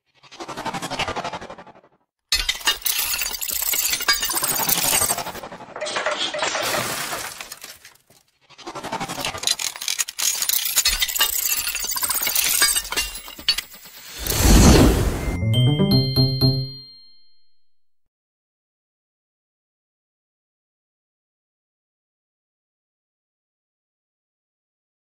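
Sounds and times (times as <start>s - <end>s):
rushing swell: 14.1s - 15.6s
ringing chime: 14.9s - 17.7s.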